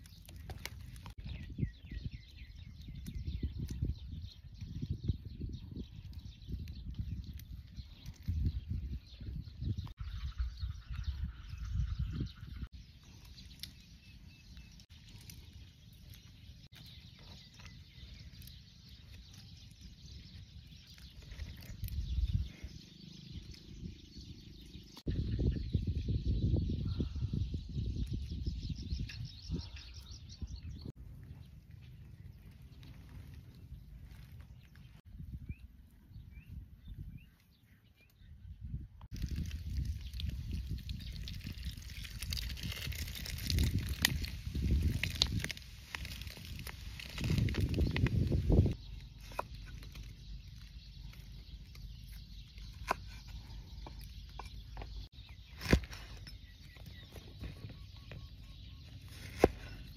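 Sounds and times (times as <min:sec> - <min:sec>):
faint bird chirping: 0:00.0 - 0:59.9
wind rumbling on microphone: 0:00.0 - 0:59.9.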